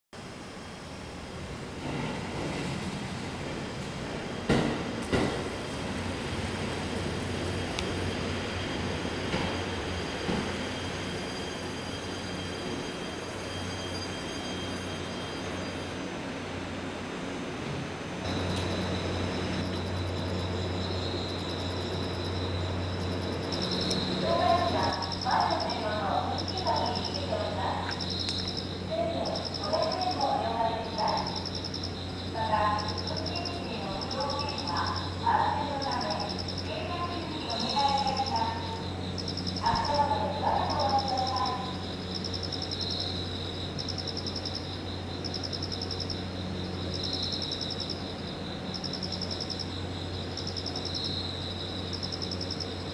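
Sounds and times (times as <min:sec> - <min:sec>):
crickets chirping: 0:00.2 - 0:52.9
diesel railcar idling hum: 0:00.2 - 0:52.9
faint high whine: 0:05.7 - 0:16.8, 0:17.6 - 0:52.9
people talking: 0:24.2 - 0:28.0, 0:28.9 - 0:31.4, 0:32.4 - 0:38.8, 0:39.6 - 0:41.8.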